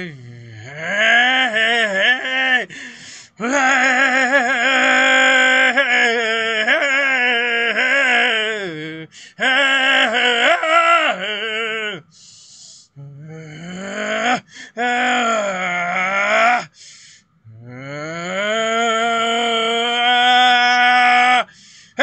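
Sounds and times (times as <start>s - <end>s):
man singing wordless phrases: 0.0s - 12.1s
man breathing: 2.7s - 3.4s, 9.1s - 9.4s, 12.1s - 13.0s, 14.4s - 14.8s, 16.7s - 17.4s, 21.5s - 22.0s.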